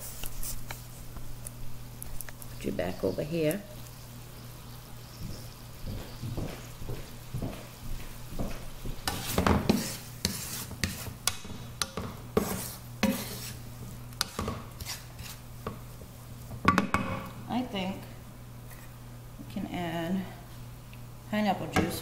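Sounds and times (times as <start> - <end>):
wooden spatula scraping a pan: 9.0 - 15.8.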